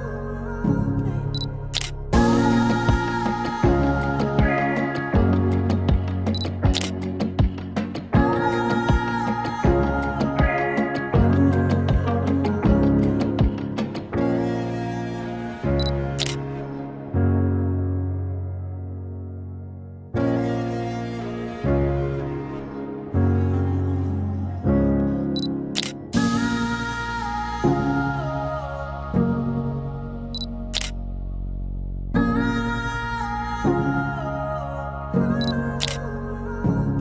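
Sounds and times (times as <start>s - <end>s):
background music chords: 0.0s - 37.0s
background music with steady beat: 0.7s - 14.7s
camera shutter click: 1.8s - 2.0s, 6.7s - 7.0s, 16.2s - 16.4s, 25.8s - 26.0s, 30.8s - 31.0s, 35.8s - 36.0s.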